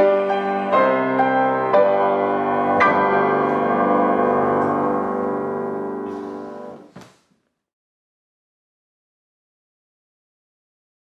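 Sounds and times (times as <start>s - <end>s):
piano chord ringing: 0.0s - 6.9s.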